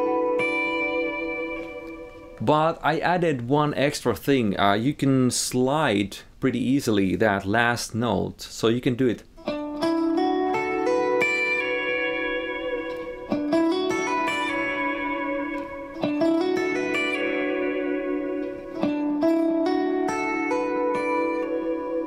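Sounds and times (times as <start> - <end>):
electric guitar playing: 0.0 - 3.5, 9.3 - 22.0.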